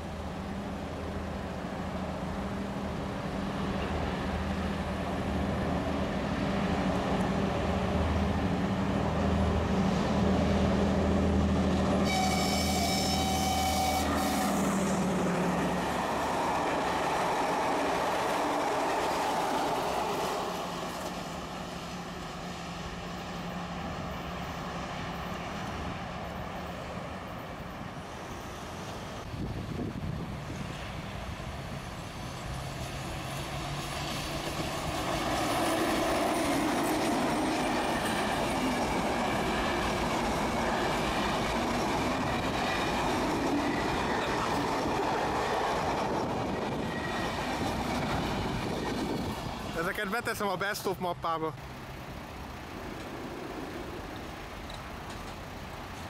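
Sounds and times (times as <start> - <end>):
train approaching: 0.0 - 56.0
train wheels rumbling over rails: 0.0 - 56.0
diesel locomotive engine running: 29.3 - 56.0.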